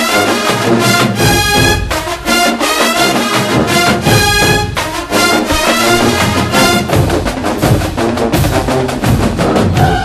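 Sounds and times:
rapid drum strokes: 0.0 - 10.0.

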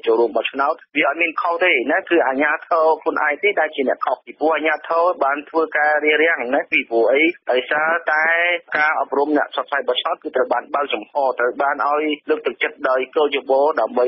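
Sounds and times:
newsreader speaking: 0.0 - 14.0.

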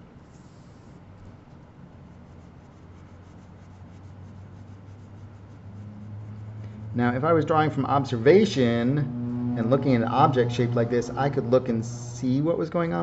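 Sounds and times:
pencil scratching on paper: 2.0 - 6.6.

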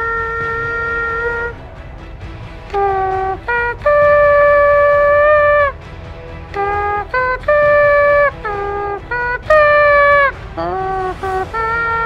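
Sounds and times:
tune blown by mouth: 0.0 - 2.0, 2.6 - 12.0.

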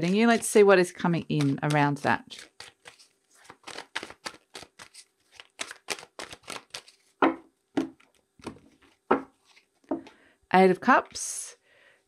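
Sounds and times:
cards shuffling: 1.2 - 9.8.

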